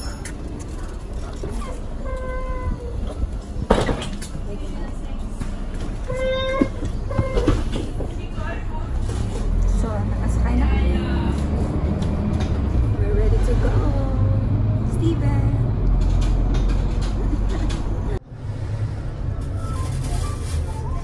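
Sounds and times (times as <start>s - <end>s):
bus engine rumble: 0.0s - 21.0s.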